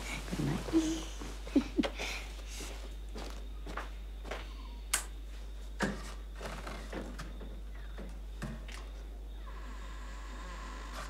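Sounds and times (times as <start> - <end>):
soft footsteps walking: 0.0 - 4.5.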